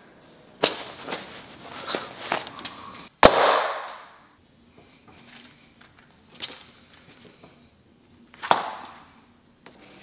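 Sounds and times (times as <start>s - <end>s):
sharp loud bang with echo: 3.2s - 4.2s.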